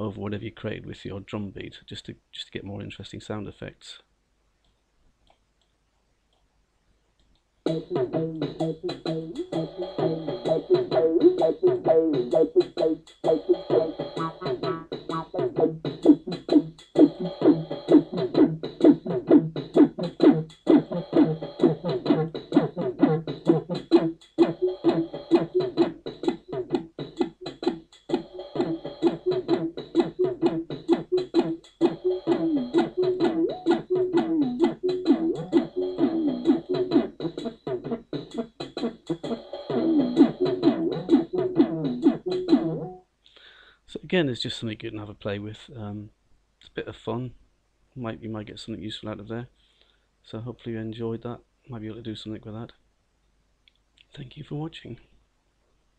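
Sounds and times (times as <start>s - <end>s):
drum machine beat: 7.6s - 43.0s
synth bass line: 7.7s - 25.9s, 28.6s - 38.4s.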